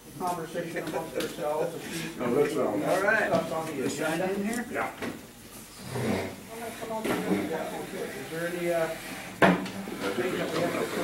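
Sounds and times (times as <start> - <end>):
people talking: 10.0 - 11.0.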